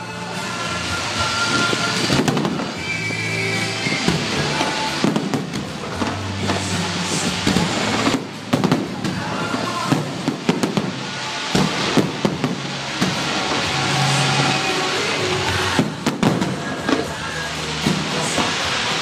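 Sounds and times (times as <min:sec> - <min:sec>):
music: 0:00.0 - 0:19.0
firework shells bursting: 0:01.5 - 0:19.0.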